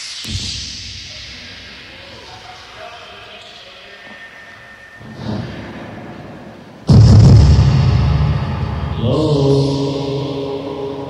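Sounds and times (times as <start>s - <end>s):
heavy low synth stab: 5.0s - 11.0s
held chant-like tone: 8.8s - 11.0s.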